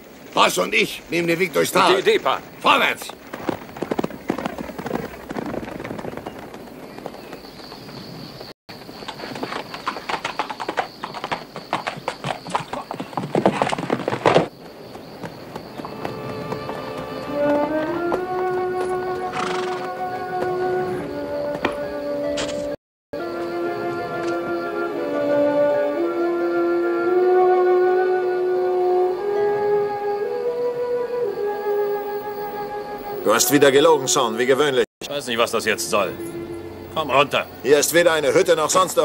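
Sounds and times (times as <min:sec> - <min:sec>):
horses galloping: 0:00.3 - 0:21.8, 0:37.1 - 0:39.0
orchestral film score: 0:15.6 - 0:39.0.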